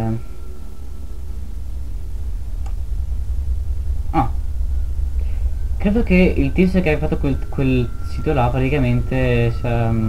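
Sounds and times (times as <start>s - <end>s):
low rumble: 0.0s - 10.0s
faint click: 2.6s - 2.8s.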